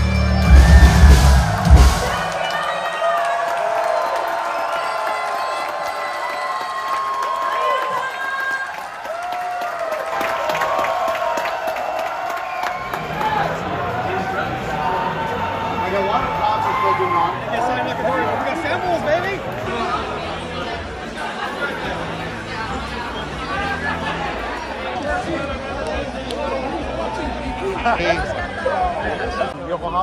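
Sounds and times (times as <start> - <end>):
rock band final hits: 0.0 - 2.4
crowd cheering and shouting: 0.0 - 30.0.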